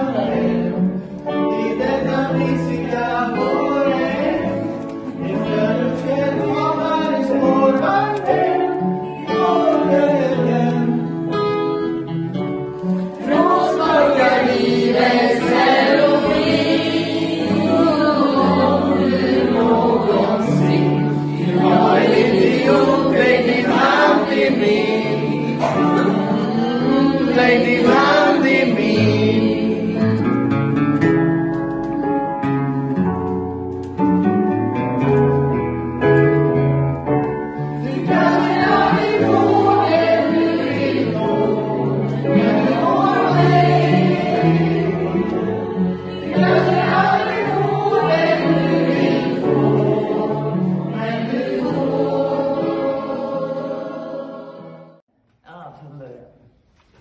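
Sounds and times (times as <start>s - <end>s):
choir singing: 0.0s - 30.5s, 37.5s - 55.0s.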